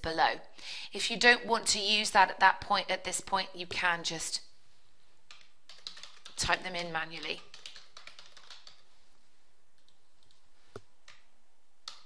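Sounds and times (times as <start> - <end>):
typing on computer keyboard: 5.3 - 6.4, 7.1 - 8.8.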